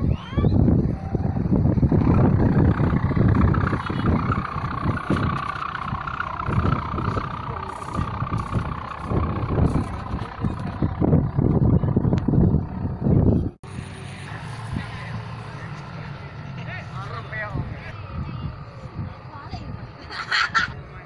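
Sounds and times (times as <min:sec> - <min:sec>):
steady high hum: 0:00.0 - 0:21.0
wind buffeting microphone: 0:00.0 - 0:21.0.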